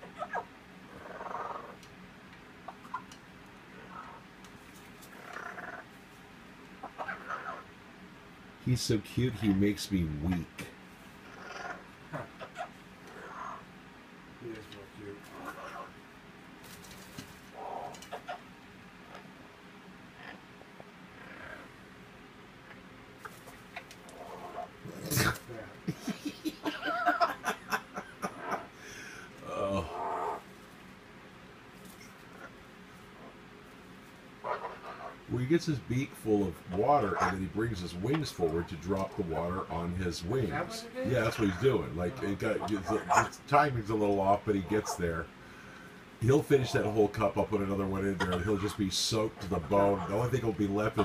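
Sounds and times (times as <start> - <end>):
parrot purr-like grumble: 0.9 - 1.8, 5.1 - 5.9, 21.2 - 21.7, 24.1 - 25.5
wavering voice-like sound: 29.4 - 30.1.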